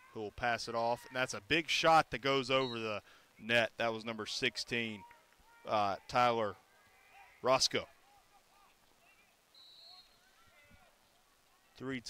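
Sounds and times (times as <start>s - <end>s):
distant shouts: 4.6s - 11.8s.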